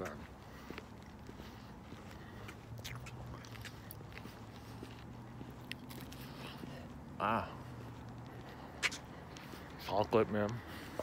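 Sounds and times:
chewing crunchy candy bar: 0:02.4 - 0:04.4, 0:05.4 - 0:06.6
mouth clicks: 0:02.8 - 0:04.0.

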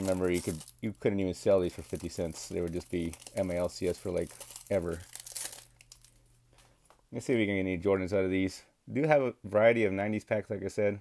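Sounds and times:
foil wrapper crinkling and tearing: 0:00.0 - 0:06.7.

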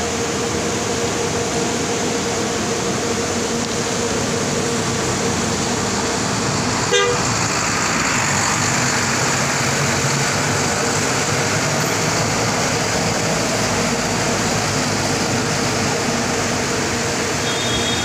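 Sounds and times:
bus engine running: 0:00.0 - 0:18.0
bus horn toot: 0:06.9 - 0:07.3, 0:17.4 - 0:18.0.

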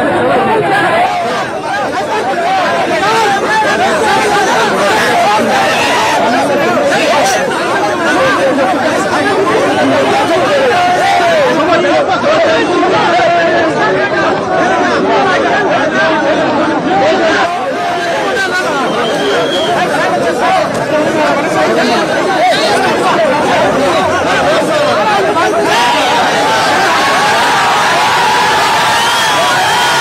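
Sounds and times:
large crowd babbling: 0:00.0 - 0:30.0.

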